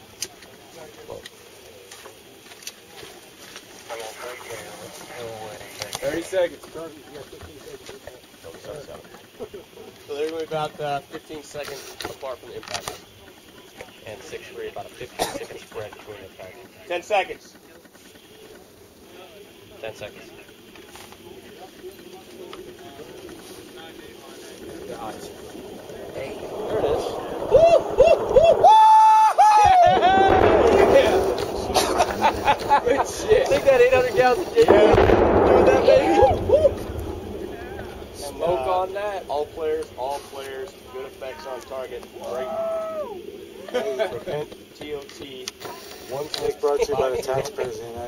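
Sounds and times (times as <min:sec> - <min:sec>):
faint scattered talk: 0:00.0 - 0:27.9, 0:30.3 - 0:48.0
faint outdoor background noise: 0:00.0 - 0:48.0
man talking: 0:32.7 - 0:36.5, 0:37.6 - 0:42.6.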